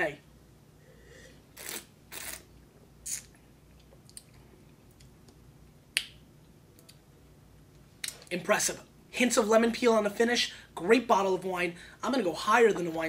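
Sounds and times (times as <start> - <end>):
mouth slurping: 1.5 - 3.4
brief mouth hiss: 1.6 - 3.4.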